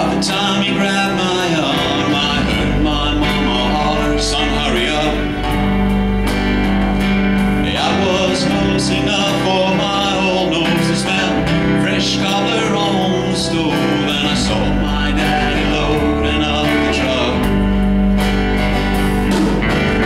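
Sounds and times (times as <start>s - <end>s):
man singing country ballad: 0.0s - 5.9s, 7.5s - 18.2s
strummed acoustic guitar: 0.0s - 20.0s.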